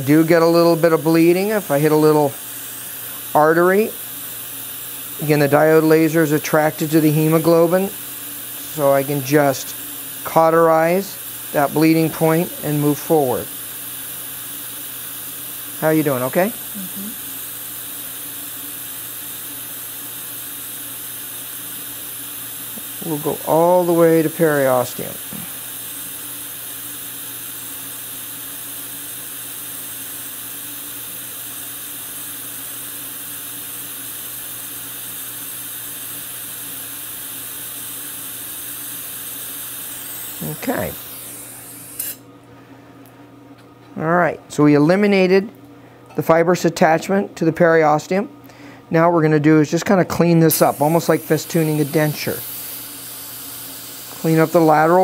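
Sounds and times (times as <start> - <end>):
dental suction hiss: 0.0 - 42.3, 50.5 - 55.0
person speaking: 10.3 - 13.5, 40.4 - 41.2, 43.9 - 52.5, 54.1 - 55.0.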